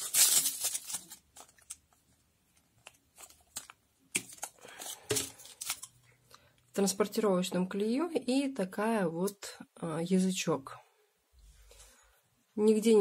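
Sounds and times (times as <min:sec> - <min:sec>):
plastic packaging crinkling and tearing: 0:00.0 - 0:06.0.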